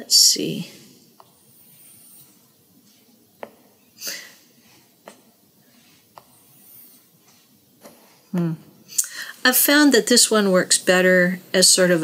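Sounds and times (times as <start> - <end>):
stylus rubbing on screen: 0.1 - 8.5.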